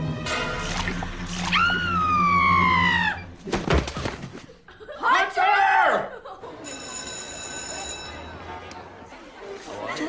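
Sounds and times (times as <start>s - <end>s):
woman screaming: 1.5s - 3.3s.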